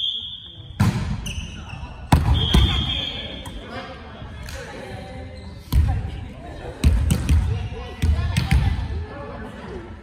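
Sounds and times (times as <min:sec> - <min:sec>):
players' voices: 0:00.1 - 0:10.0.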